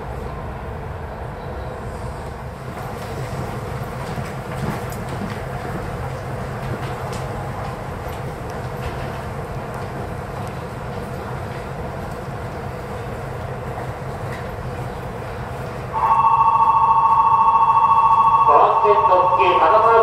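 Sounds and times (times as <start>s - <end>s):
station announcement voice: 15.9s - 20.0s
platform bell ringing: 16.0s - 20.0s.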